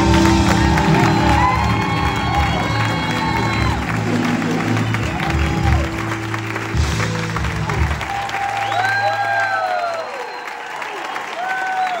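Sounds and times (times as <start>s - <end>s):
rock band playing: 0.0s - 9.6s
audience applauding and cheering: 0.0s - 12.0s
audience whistling: 0.0s - 12.0s.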